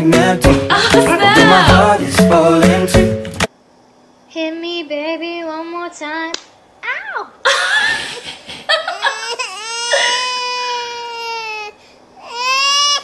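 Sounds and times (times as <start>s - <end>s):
comic crying wails: 0.7s - 1.9s, 9.0s - 11.6s.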